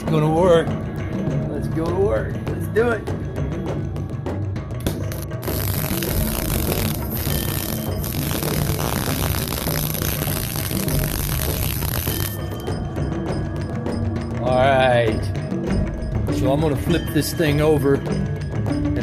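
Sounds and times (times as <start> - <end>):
background music with drum beat: 0.0 - 19.0
steady hiss: 5.4 - 12.3.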